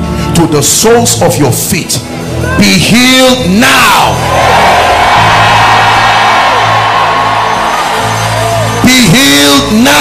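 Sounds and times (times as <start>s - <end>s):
congregation shouting: 3.6s - 10.0s.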